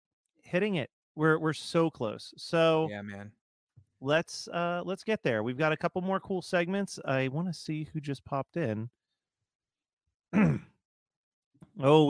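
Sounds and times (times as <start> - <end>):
person sighing: 10.4 - 10.7.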